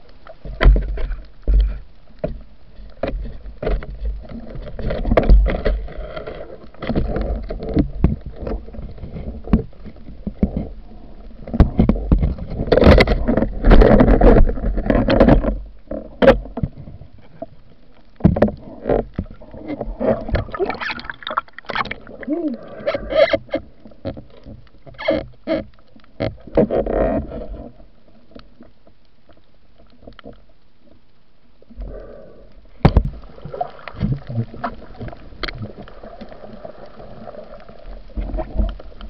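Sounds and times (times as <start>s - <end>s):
muffled rush of water: 0.0s - 39.0s.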